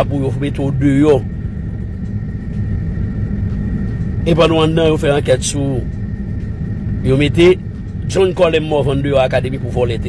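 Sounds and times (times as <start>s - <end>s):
recorded man's voice: 0.0s - 1.3s, 4.2s - 5.9s, 7.0s - 10.0s
low background rumble: 0.0s - 10.0s.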